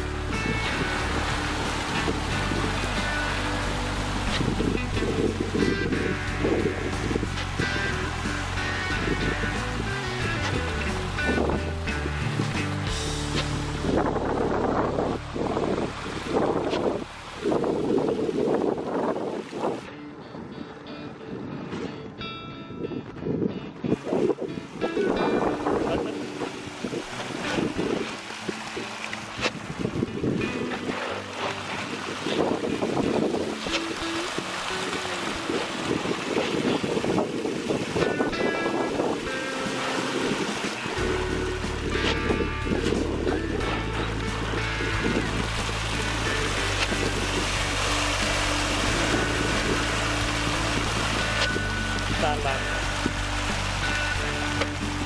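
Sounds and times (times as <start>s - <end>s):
background music: 0.0s - 15.6s, 37.9s - 55.0s
steady low bass: 0.0s - 18.0s, 40.5s - 55.0s
fish splashing at water surface: 39.2s - 55.0s.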